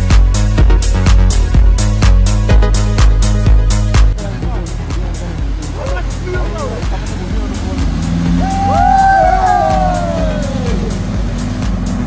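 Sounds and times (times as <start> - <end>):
background music with steady beat: 0.0 - 12.0
four-wheel drive engine: 4.1 - 12.0
water spray from vehicle: 4.2 - 12.0
people whooping and shouting: 8.3 - 11.1.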